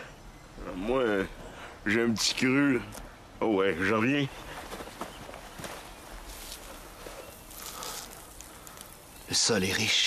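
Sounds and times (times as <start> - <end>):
dry vegetation rustling: 0.6 - 10.0
faint footsteps: 4.3 - 9.1.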